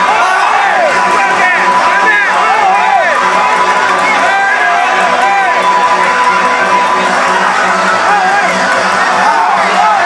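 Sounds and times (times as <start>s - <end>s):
crowd: 0.0s - 10.0s.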